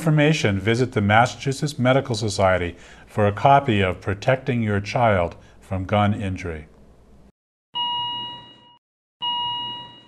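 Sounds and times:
heart monitor beep: 7.8s - 10.0s.

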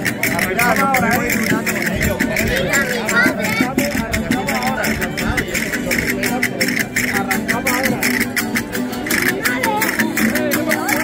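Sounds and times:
jingling percussion: 0.0s - 11.0s
strummed guitars: 0.0s - 11.0s.

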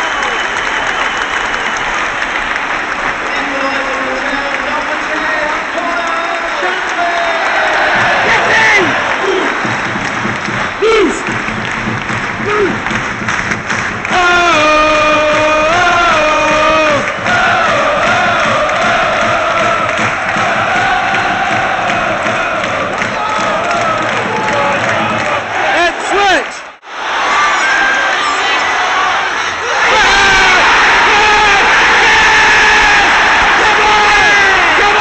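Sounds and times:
shouts: 5.2s - 9.6s, 10.8s - 11.3s, 27.2s - 35.0s
crowd chanting and singing: 6.6s - 11.4s, 14.0s - 35.0s
loud nearby voice singing: 14.1s - 25.7s.

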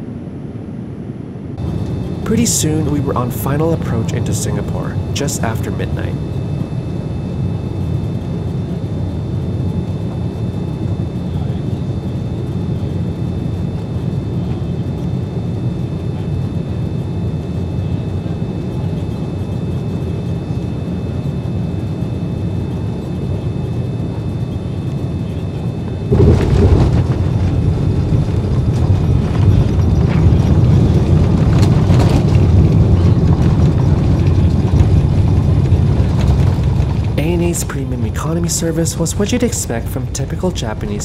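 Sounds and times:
aircraft touching down on runway: 0.0s - 41.0s
airliner cabin roar: 0.0s - 41.0s.

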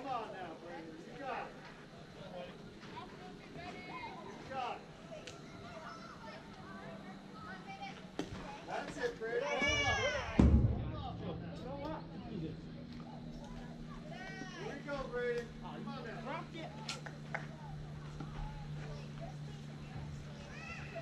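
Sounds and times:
people chattering and calling out: 0.0s - 21.0s
loud high-pitched shout: 9.5s - 10.4s
dull low thump: 9.8s - 12.8s.

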